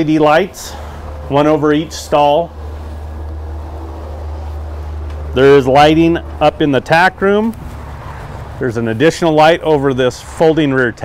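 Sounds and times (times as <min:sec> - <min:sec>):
low rumble: 0:00.0 - 0:09.4.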